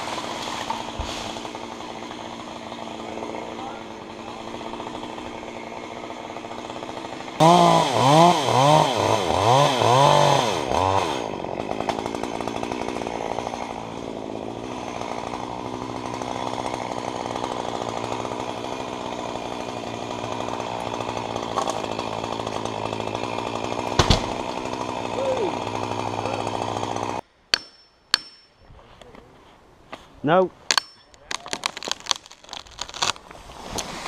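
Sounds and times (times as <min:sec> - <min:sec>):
chainsaw cutting wood: 0:00.0 - 0:27.6, 0:31.4 - 0:34.0
tree trunk cracking: 0:19.6 - 0:25.1, 0:31.2 - 0:34.0.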